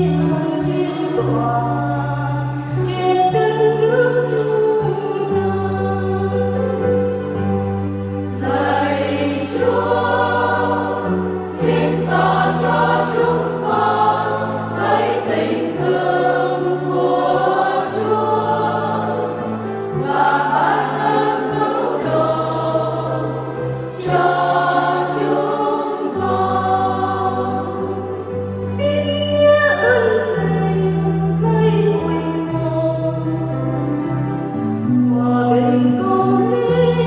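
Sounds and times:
choir singing a psalm: 0.0 - 37.0
instrumental accompaniment: 0.0 - 37.0.

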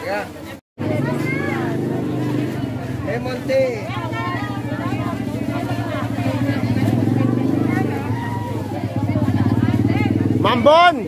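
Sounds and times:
street voices: 0.0 - 11.0
motorcycle engine running: 0.8 - 11.0.

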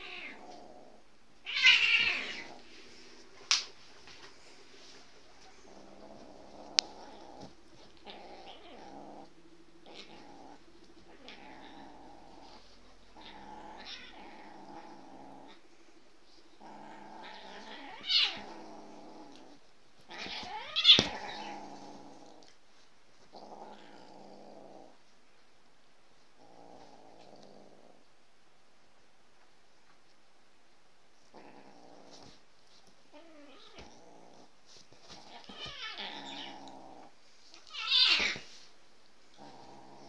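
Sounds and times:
cat growling: 0.0 - 22.6, 23.2 - 25.0, 26.4 - 28.0, 31.3 - 32.4, 33.1 - 38.7, 39.3 - 40.0
cat yowling: 1.4 - 2.6.

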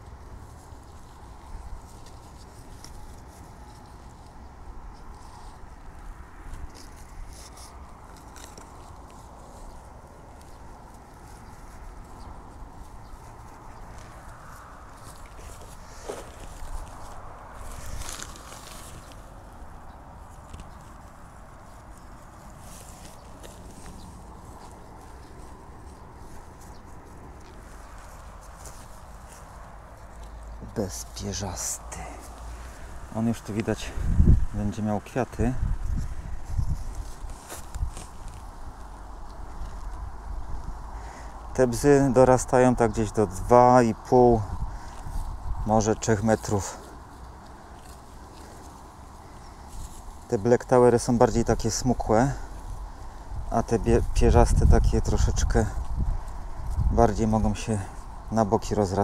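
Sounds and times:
rustles and knocks of plant pots: 0.0 - 59.0
soil pressed and scuffed by hand: 0.0 - 59.0
steady low rumble: 0.0 - 59.0.

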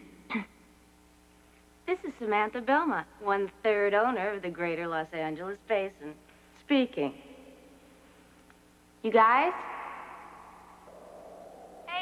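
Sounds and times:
low background hiss: 0.0 - 12.0
woman shouting in reverberant room: 9.1 - 10.8.

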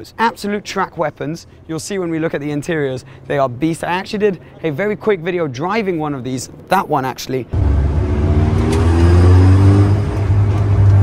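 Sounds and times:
car engine droning: 7.5 - 11.0.

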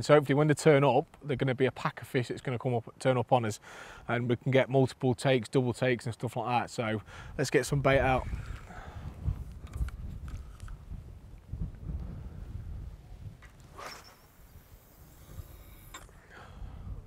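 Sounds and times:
wind rumble on microphone: 7.2 - 17.0
fishing rod casting swish: 13.6 - 14.5
fishing line running off reel: 13.7 - 16.2.

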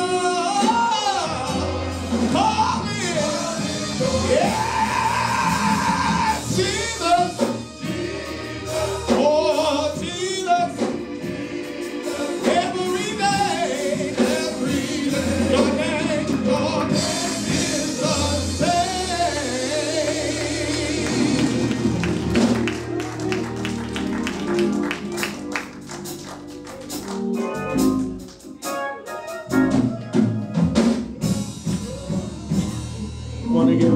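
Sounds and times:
male vocal group singing in harmony: 0.0 - 22.5
instrumental backing with bass line: 0.0 - 33.9
hand claps: 20.7 - 28.7.

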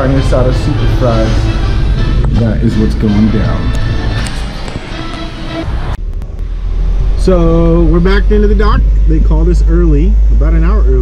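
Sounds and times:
background music: 0.0 - 8.0.

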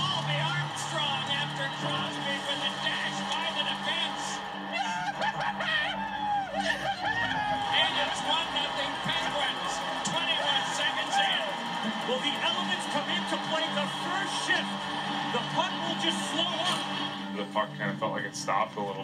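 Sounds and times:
background music on television: 0.0 - 19.0
indistinct voices on television: 0.0 - 19.0.

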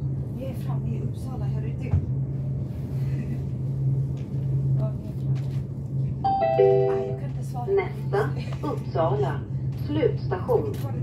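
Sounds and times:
moving train hum: 0.0 - 11.0
descending announcement chime: 6.3 - 7.4.

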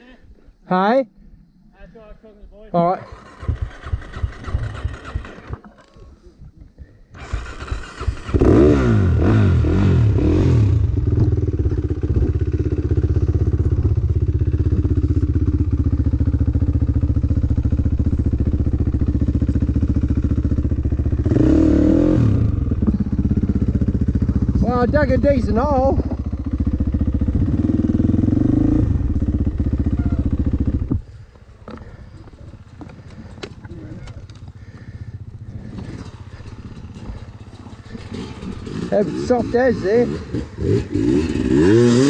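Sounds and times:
dirt bike engine revving and idling: 3.0 - 6.0, 7.2 - 42.0
dirt bike engine cranking: 3.0 - 6.1, 7.1 - 11.3, 12.1 - 42.0.

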